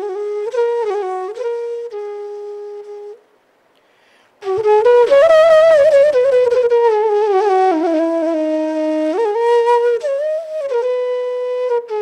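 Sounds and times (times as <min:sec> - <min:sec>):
bamboo flute long note: 0:00.0 - 0:03.2, 0:04.4 - 0:12.0.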